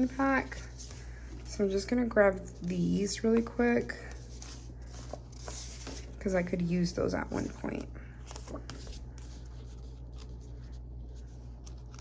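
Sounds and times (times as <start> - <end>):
paper sheets rustling: 0.0 - 12.0
steady low hum: 0.0 - 12.0.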